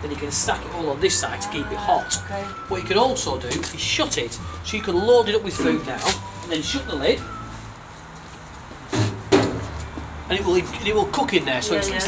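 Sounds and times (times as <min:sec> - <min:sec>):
metal barbecue lid knocking shut: 0:08.9 - 0:09.7.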